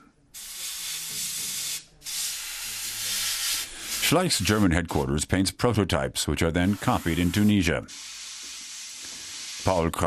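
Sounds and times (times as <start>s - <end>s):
paint spray gun hissing: 0.4s - 4.1s, 6.6s - 9.9s.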